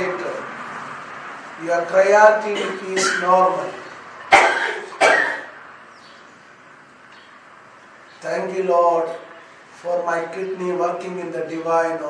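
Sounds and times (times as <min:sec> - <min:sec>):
man coughing: 0:02.5 - 0:03.3, 0:04.3 - 0:05.5.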